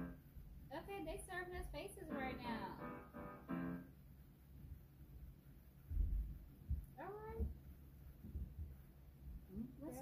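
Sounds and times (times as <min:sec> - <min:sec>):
dull low thumps: 0:05.9 - 0:09.7.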